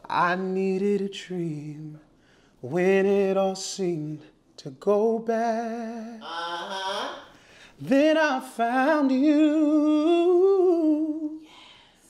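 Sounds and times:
man singing a cappella: 0.0 - 6.2, 7.7 - 11.5.

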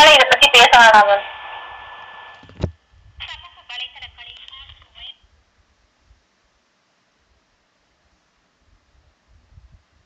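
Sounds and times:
person speaking over telephone: 0.0 - 1.4, 3.2 - 5.2.

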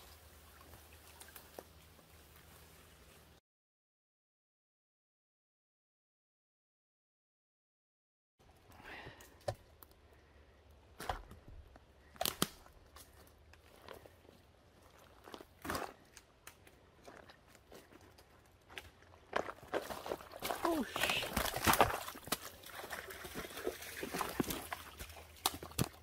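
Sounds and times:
footsteps through wet undergrowth: 0.0 - 3.4, 11.0 - 26.0
twigs crunching and cracking: 8.5 - 26.0.

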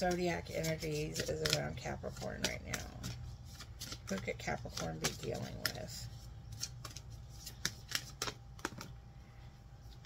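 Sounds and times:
deck of cards shuffled by hand: 0.0 - 9.0.

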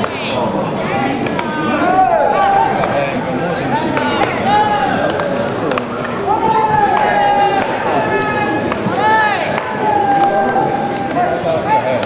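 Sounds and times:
players shouting long calls: 0.7 - 12.0
bat cracking ball: 3.8 - 7.9.

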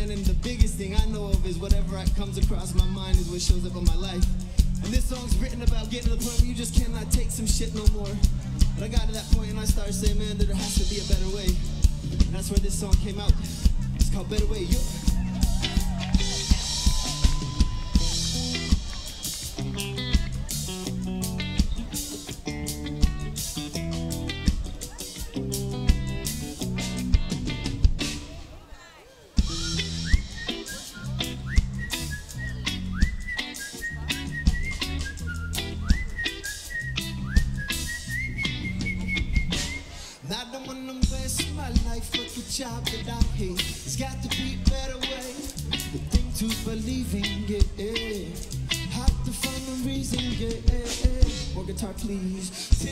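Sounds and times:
electric guitar: 0.0 - 28.4, 29.4 - 52.9
bass guitar: 0.0 - 28.6, 29.4 - 52.9
drum kit: 0.0 - 28.6, 29.3 - 52.9
rock band playing: 0.0 - 28.6, 29.3 - 52.9
congas: 2.2 - 28.3, 29.4 - 40.0.

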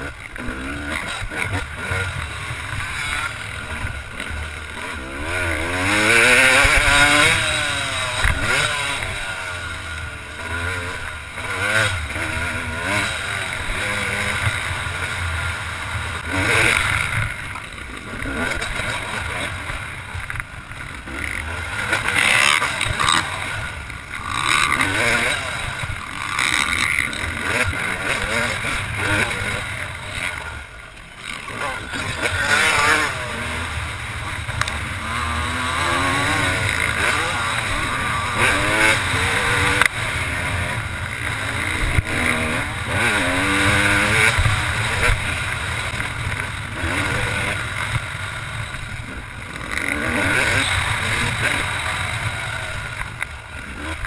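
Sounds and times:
motocross engine revving: 0.0 - 54.0.

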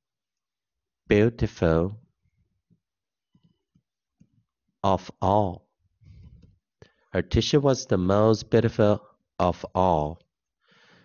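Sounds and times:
man speaking: 1.1 - 2.0, 4.8 - 5.8, 7.2 - 10.2.

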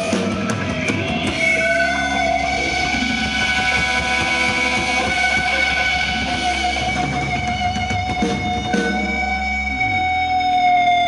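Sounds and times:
electric guitar feedback drone: 0.0 - 11.0
low hum: 0.7 - 10.1.

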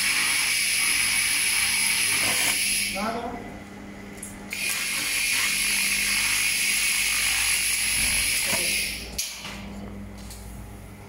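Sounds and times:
laser cleaner hiss and whine: 0.0 - 3.1, 4.5 - 9.2.

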